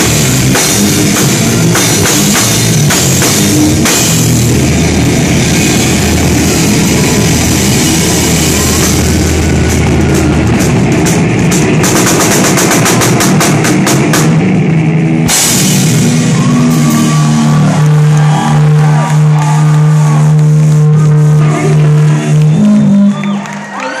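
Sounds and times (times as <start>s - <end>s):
cymbal crash: 0.0s - 23.0s
distorted electric guitar: 0.0s - 23.5s
drum kit: 0.0s - 23.5s.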